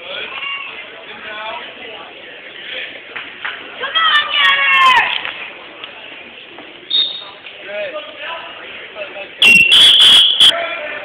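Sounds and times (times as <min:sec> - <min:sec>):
referee's whistle blasts: 0:06.9 - 0:07.4, 0:09.4 - 0:10.5.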